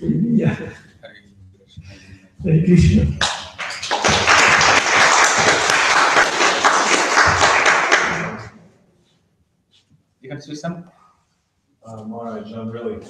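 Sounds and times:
audience applauding: 3.2s - 8.5s.

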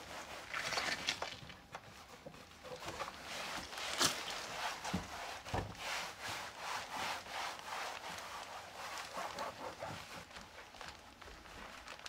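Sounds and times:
cloth rubbing plastic panel: 1.9s - 10.8s.

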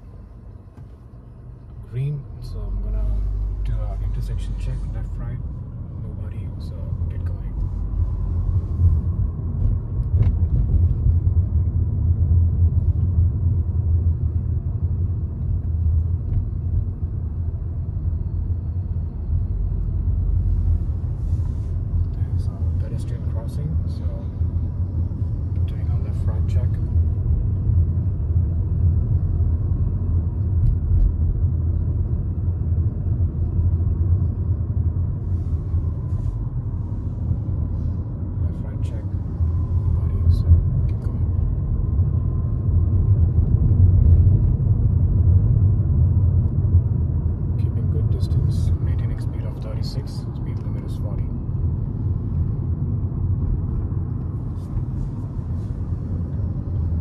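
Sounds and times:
car engine and road rumble: 0.0s - 57.0s.

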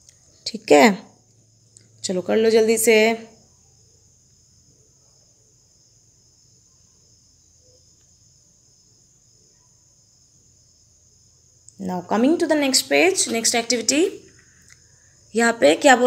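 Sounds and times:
faint high-pitched ringing: 0.0s - 16.0s.

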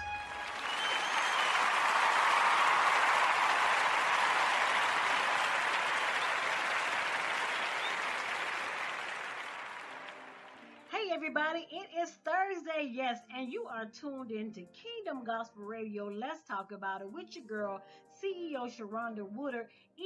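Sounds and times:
audience applause: 0.0s - 10.9s.

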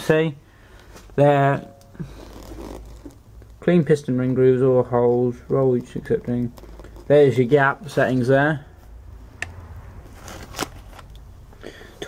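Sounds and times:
faint handling noise: 0.7s - 8.9s.

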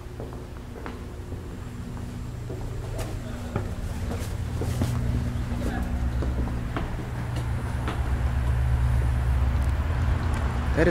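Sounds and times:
footsteps on concrete stairs: 0.0s - 9.6s
steady low hum: 0.0s - 10.9s
low rumble: 1.0s - 10.9s.

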